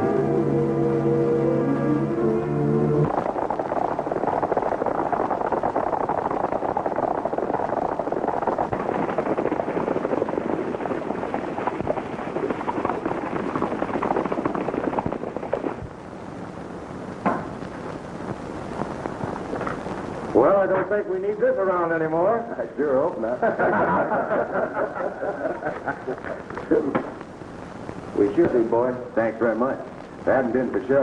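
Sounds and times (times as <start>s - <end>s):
quiet hiss: 0.0s - 31.0s
sharp knock: 17.2s - 17.6s.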